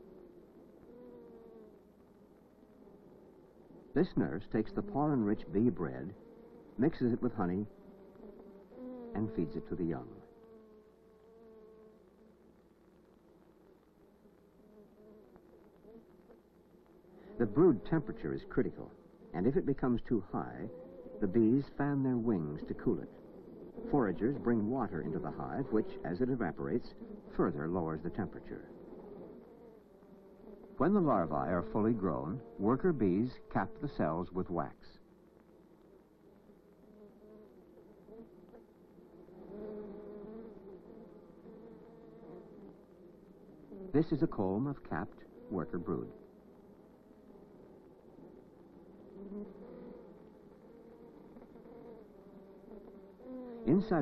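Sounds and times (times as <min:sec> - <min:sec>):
honeybees buzzing: 0:00.0 - 0:54.0.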